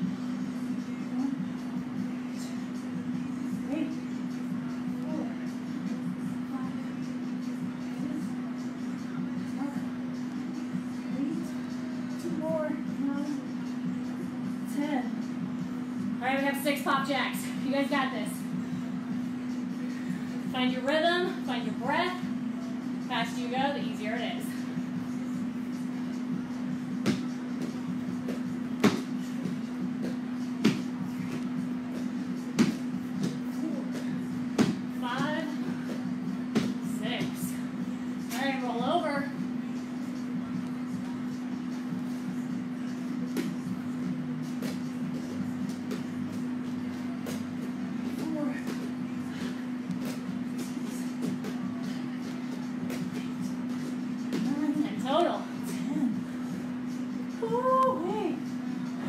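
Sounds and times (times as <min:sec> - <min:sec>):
steady low hum: 0:00.0 - 0:59.0
hands and feet thudding on mats: 0:26.9 - 0:37.4.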